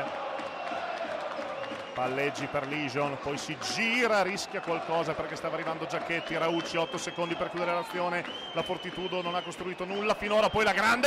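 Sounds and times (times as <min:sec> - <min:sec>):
crowd chanting and cheering: 0:00.0 - 0:11.0.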